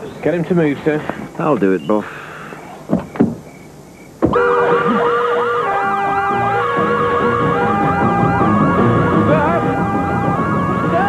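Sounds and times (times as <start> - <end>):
police sirens wailing: 4.2 - 11.0.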